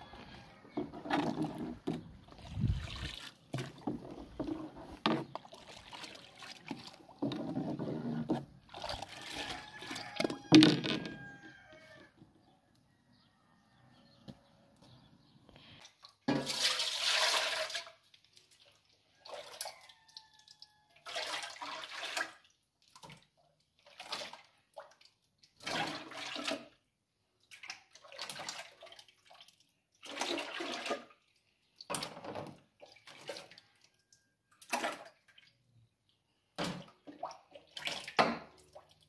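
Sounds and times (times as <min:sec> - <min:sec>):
milk pouring and splashing: 0:00.2 - 0:10.5, 0:15.8 - 0:35.7, 0:36.6 - 0:39.0.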